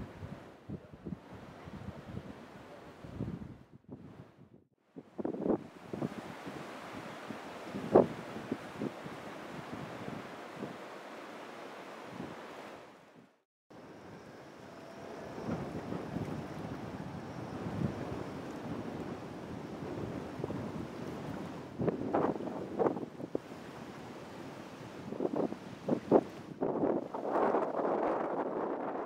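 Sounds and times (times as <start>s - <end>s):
wind buffeting microphone: 3.0s - 10.8s, 14.7s - 24.2s, 24.8s - 29.0s.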